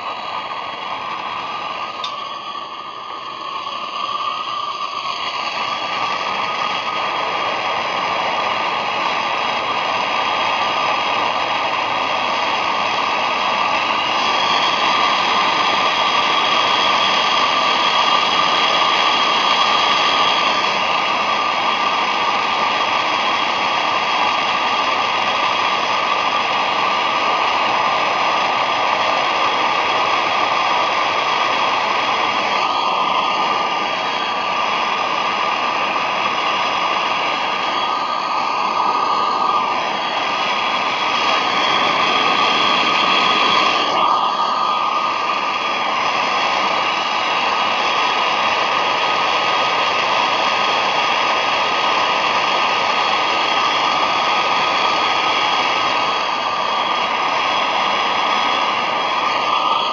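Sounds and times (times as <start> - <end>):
gas torch hissing: 0.0 - 59.9.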